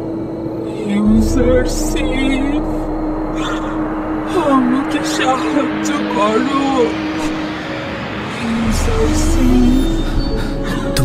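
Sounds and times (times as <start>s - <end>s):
low drone: 0.0s - 11.0s
wordless wavering voices: 0.0s - 11.0s
deep rumbling hit: 1.0s - 11.0s.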